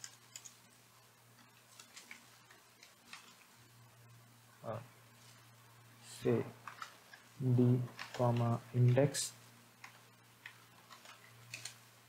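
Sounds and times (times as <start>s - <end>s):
keyboard typing clicks: 0.0s - 0.6s
low steady hum: 0.0s - 12.0s.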